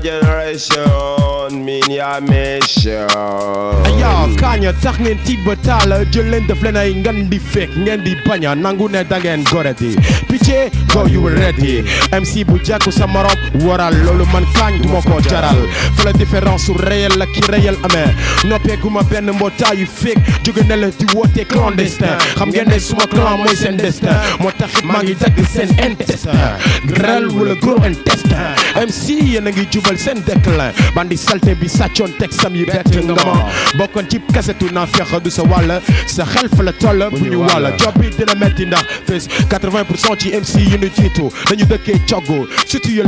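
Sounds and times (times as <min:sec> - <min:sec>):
rapping over a beat: 0:00.0 - 0:43.0
deep falling bass notes: 0:03.7 - 0:06.9, 0:10.8 - 0:11.8.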